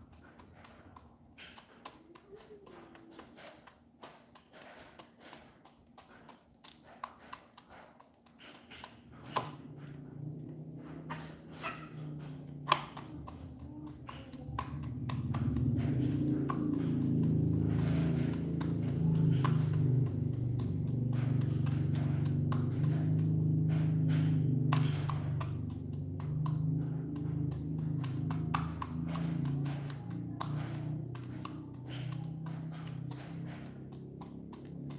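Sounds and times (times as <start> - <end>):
beak tapping on plastic: 0.0 - 34.9
low steady drone: 9.1 - 34.9.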